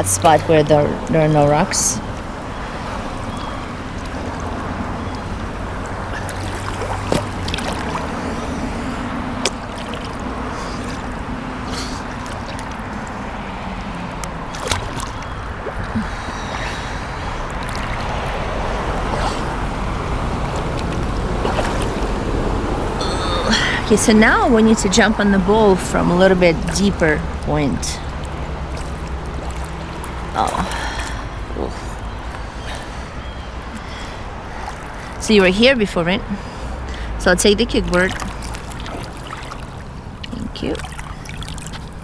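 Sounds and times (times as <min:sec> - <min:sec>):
water sloshing and splashing: 0:00.0 - 0:42.0.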